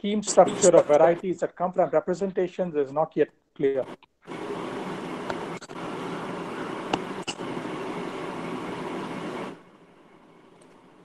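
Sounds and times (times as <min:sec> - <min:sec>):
microphone hiss: 0:00.0 - 0:11.0
low hum: 0:03.6 - 0:11.0.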